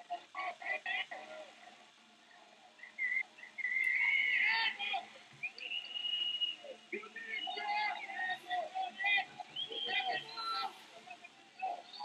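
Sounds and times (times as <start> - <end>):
distant shouting voices: 2.8 - 12.0
high steady whistle-like tone: 5.4 - 8.7, 9.5 - 10.8.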